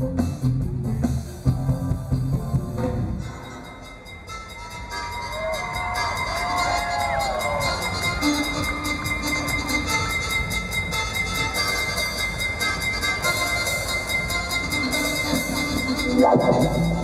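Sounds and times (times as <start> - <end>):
electro-pop band music: 0.0 - 17.0
fast ticking high percussion: 3.2 - 17.0.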